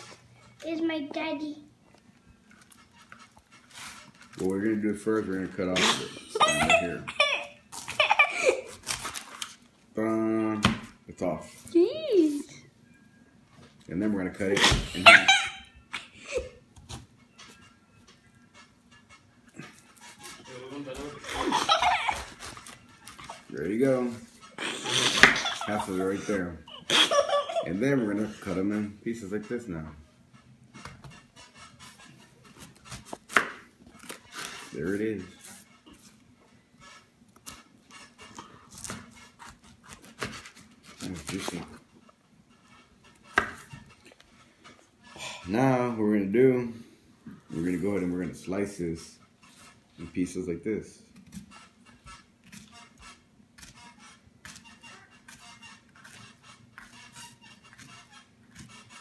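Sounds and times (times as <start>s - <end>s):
knife slicing pineapple: 37.4s - 41.8s, 51.2s - 59.0s.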